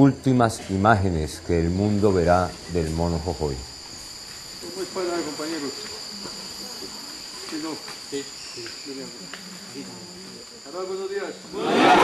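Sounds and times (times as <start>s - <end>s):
insects droning: 0.0s - 12.0s.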